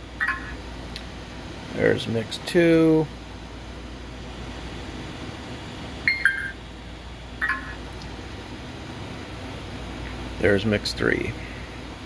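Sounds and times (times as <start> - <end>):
steady low hum: 0.0 - 12.0
short electronic beeps: 6.1 - 6.6.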